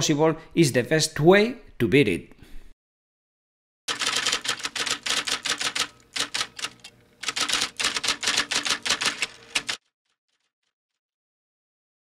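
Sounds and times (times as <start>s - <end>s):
typewriter keystroke clicks: 3.9s - 9.8s.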